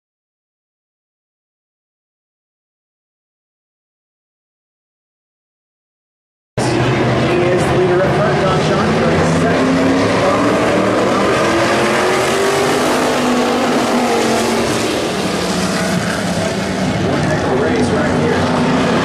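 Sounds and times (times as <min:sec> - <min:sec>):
race car engines droning: 0:06.6 - 0:19.0.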